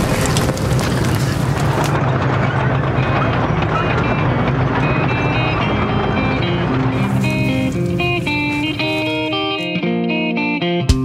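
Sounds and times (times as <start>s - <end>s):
dense rumble with low drone: 0.0s - 9.5s
guitar picked notes: 2.9s - 11.0s.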